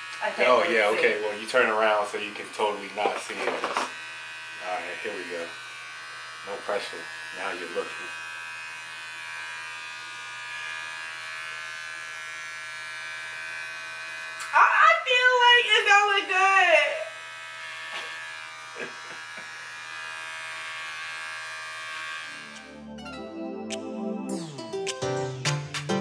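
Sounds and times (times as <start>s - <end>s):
electric hair clippers buzzing: 0.0s - 22.9s.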